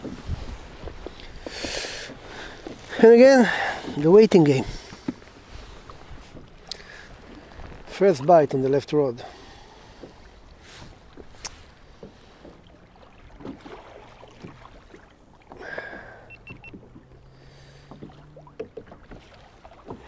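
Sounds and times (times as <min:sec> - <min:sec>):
small waves lapping against hull: 0:00.0 - 0:20.0.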